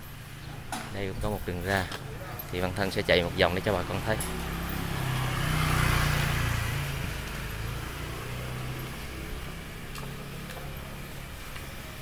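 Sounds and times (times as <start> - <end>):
motor scooter passing by: 2.0 - 12.0.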